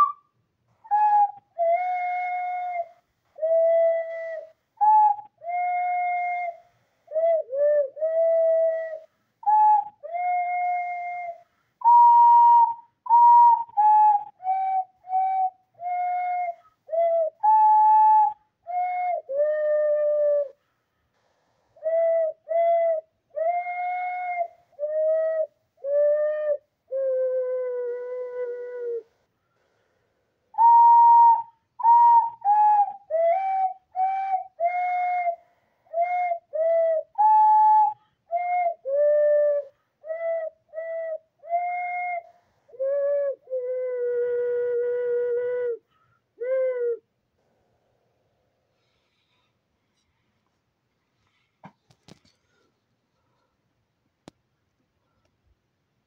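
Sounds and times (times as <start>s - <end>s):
person whistling a slow melody: 0.0s - 20.7s, 21.8s - 29.8s, 30.5s - 47.1s.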